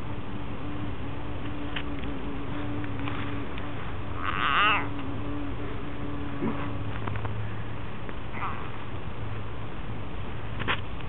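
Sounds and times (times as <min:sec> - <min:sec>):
frog distress scream: 0:04.1 - 0:05.0, 0:08.3 - 0:08.8.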